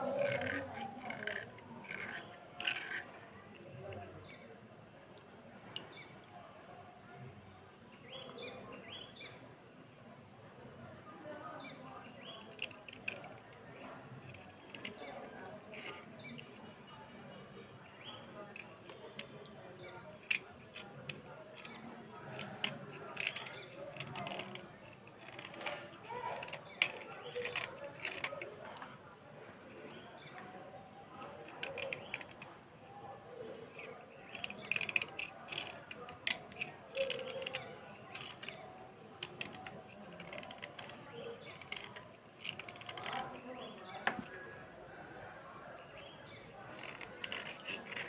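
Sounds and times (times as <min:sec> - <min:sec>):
blade scraping slate pencil: 0:00.0 - 0:04.4, 0:12.2 - 0:30.5, 0:31.1 - 0:44.6, 0:46.3 - 0:48.0.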